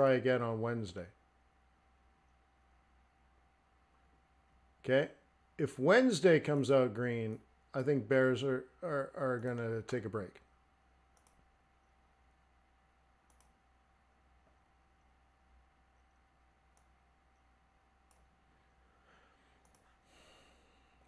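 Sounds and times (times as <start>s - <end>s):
faint steady hum: 0.0s - 21.0s
computer mouse clicks: 11.1s - 12.0s, 13.2s - 13.6s, 15.9s - 18.4s, 19.6s - 20.0s
soft breath: 18.5s - 21.0s.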